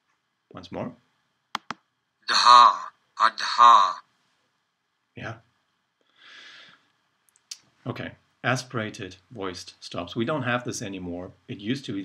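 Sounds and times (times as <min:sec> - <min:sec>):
computer mouse click: 0:01.6 - 0:01.8
soft breathy hiss: 0:06.0 - 0:07.0.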